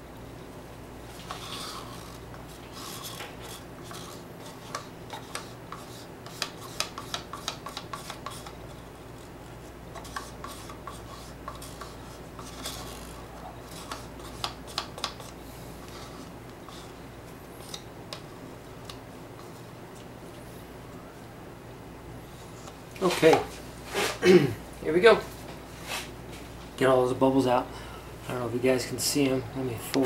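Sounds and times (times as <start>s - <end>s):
stir stick scraping plastic cup: 1.1s - 17.0s.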